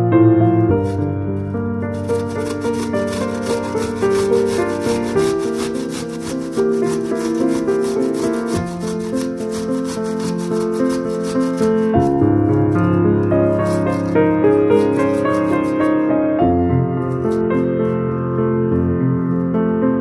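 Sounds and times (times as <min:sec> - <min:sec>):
onion grated on metal grater: 0:00.7 - 0:01.1, 0:01.8 - 0:16.1, 0:17.1 - 0:17.6.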